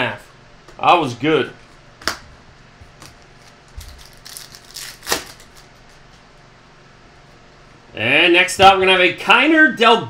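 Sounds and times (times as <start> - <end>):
cards clicking and rustling: 3.0 - 6.0.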